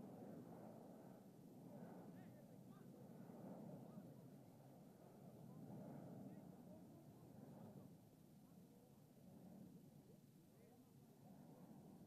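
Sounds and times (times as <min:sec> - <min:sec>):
distant indistinct voices: 0:00.0 - 0:12.0.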